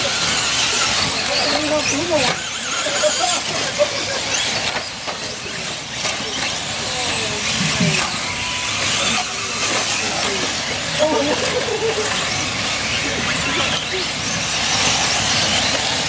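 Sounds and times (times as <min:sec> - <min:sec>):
electric motors whining: 0:00.0 - 0:16.0
tyres hissing on gravel: 0:00.0 - 0:16.0.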